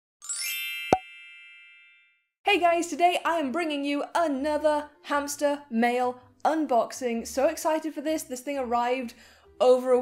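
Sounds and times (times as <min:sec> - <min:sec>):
ringing chime: 0:00.2 - 0:02.2.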